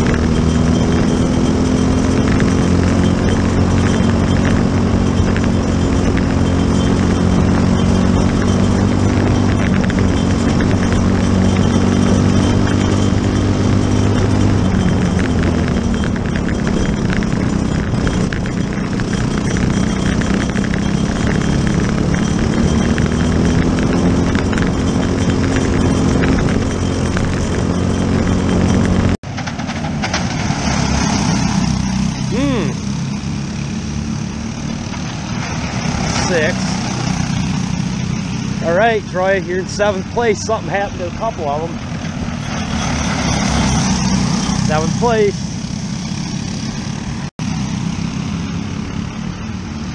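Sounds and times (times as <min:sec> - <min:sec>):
kart engine running: 0:00.0 - 0:49.9
karts passing: 0:00.0 - 0:49.9.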